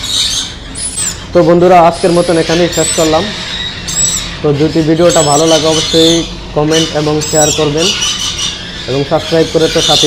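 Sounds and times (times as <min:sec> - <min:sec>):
parrots squawking: 0:00.0 - 0:10.0
man talking: 0:01.3 - 0:03.4, 0:04.4 - 0:08.0, 0:08.9 - 0:10.0.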